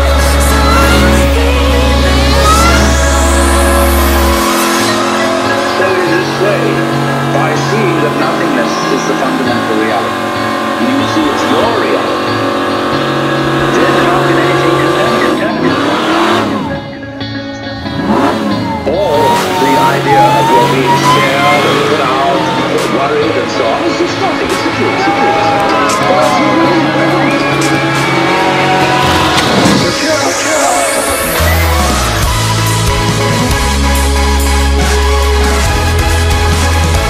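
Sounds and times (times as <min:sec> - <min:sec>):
tyres squealing: 0:00.0 - 0:16.9, 0:18.0 - 0:33.0
car engine revving: 0:00.0 - 0:37.0
electronic music: 0:00.0 - 0:37.0.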